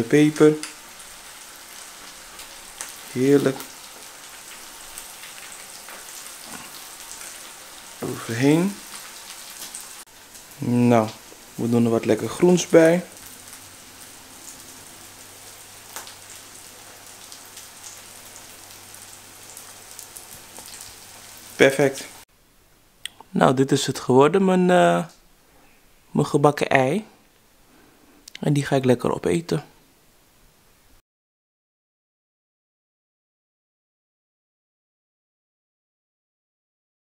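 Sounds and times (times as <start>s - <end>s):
food sizzling in a pan: 0.0s - 22.3s.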